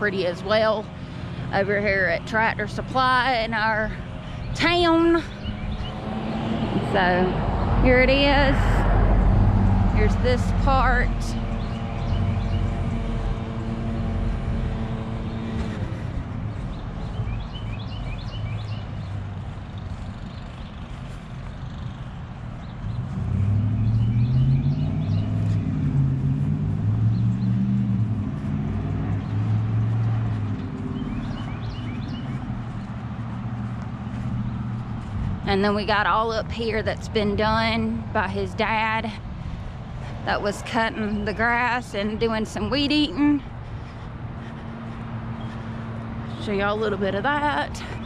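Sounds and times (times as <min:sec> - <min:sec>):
passing vehicle engine: 0:00.0 - 0:48.0
vehicle engines humming: 0:00.0 - 0:48.0.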